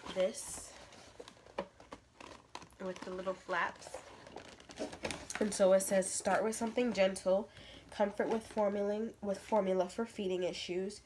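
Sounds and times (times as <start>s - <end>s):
person speaking: 0.0s - 0.9s, 2.8s - 4.2s.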